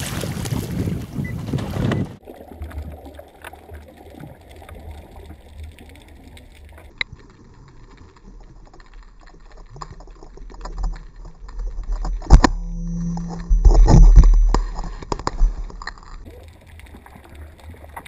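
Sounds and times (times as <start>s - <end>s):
water splashing and rushing: 0.0s - 18.0s
muffled underwater rumble: 0.6s - 18.0s.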